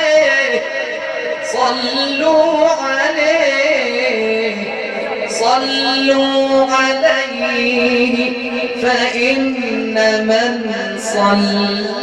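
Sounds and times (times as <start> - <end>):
man singing devotional chant: 0.0 - 12.0.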